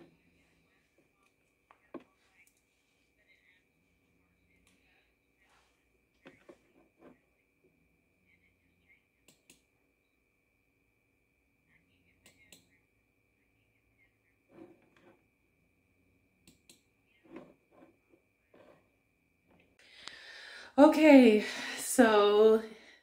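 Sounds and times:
faint high whine: 0.0 - 23.0.

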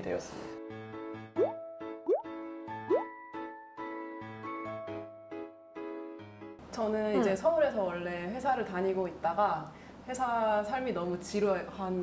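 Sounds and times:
light background music: 0.0 - 9.6
rising bloop pop effects: 1.4 - 3.2.

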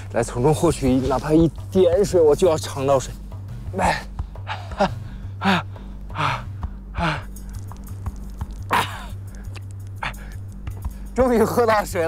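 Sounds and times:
background music: 0.0 - 12.0
man gasping breaths: 4.0 - 7.6, 9.0 - 11.2.

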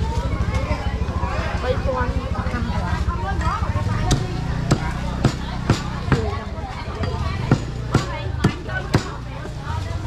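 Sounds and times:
cleaver chopping meat on wood: 4.1 - 6.4, 7.4 - 9.2.

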